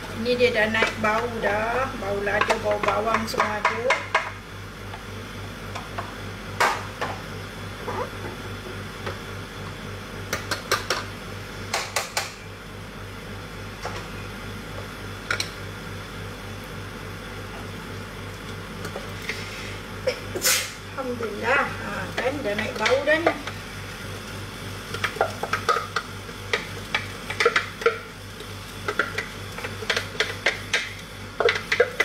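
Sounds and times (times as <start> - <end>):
extractor fan humming: 0.0 - 32.0.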